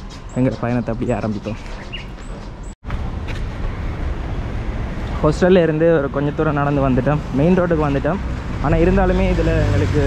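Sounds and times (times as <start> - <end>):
low rumble of road traffic: 0.0 - 10.0.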